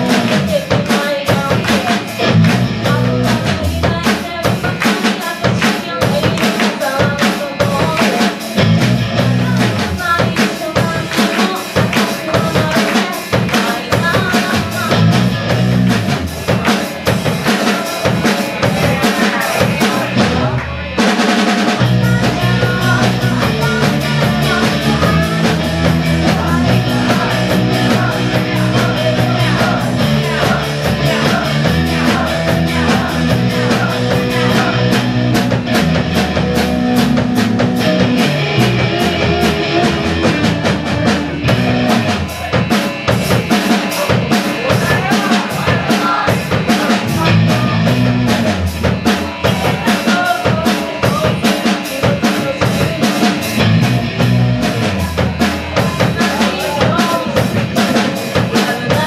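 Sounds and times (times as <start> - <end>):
bass guitar: 0.0 - 59.0
drum kit steady beat: 0.0 - 59.0
electric guitars: 0.0 - 59.0
live rock band playing loudly: 0.0 - 59.0.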